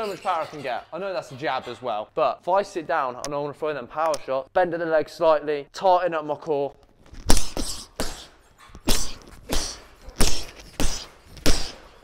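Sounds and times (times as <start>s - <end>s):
boxing gloves thudding on punch bag: 7.3s - 12.0s.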